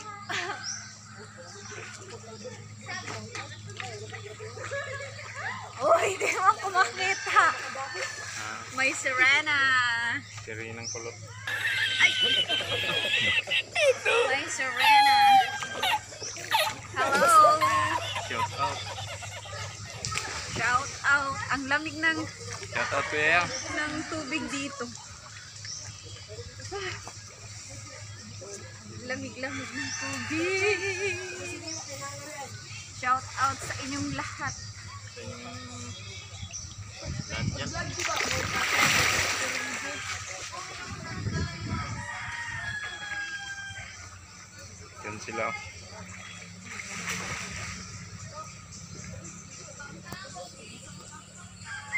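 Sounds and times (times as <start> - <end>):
voices: 0.0 - 51.9
water splashing in a pool: 1.7 - 9.8, 11.3 - 28.8, 36.8 - 41.6, 43.0 - 49.2
man laughing high-pitched: 11.6 - 14.3.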